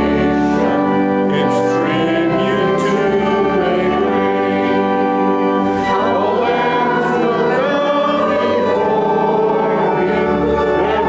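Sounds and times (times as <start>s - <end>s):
congregation singing a hymn: 0.0s - 11.0s
organ: 0.0s - 11.0s.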